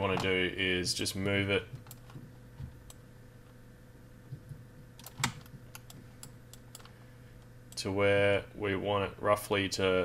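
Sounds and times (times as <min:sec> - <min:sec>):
faint steady hum: 0:00.0 - 0:10.0
keyboard and mouse clicks: 0:04.3 - 0:06.9.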